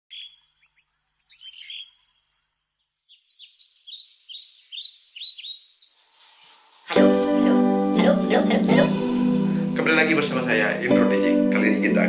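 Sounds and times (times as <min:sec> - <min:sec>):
birds chirping: 0:00.1 - 0:11.4.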